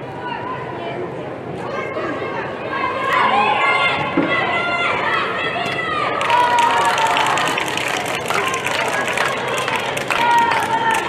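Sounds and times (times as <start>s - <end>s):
children shouting: 2.0s - 11.0s.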